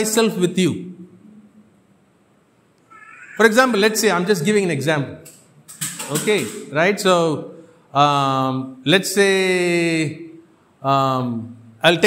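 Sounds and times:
man speaking: 0:00.0 - 0:01.0, 0:03.4 - 0:05.2, 0:06.0 - 0:12.0.

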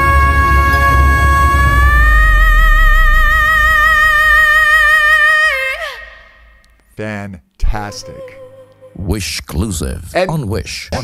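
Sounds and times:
woman singing a high belted note: 0:00.0 - 0:06.4.

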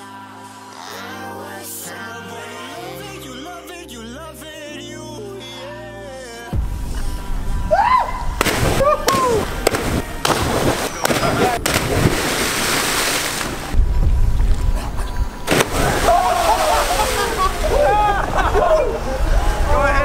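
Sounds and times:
wind rumbling on microphone: 0:06.6 - 0:16.1, 0:17.2 - 0:20.0
people whooping and yelling: 0:07.7 - 0:09.5, 0:15.6 - 0:20.0
bodies splashing into water: 0:08.4 - 0:14.8, 0:15.4 - 0:18.7.

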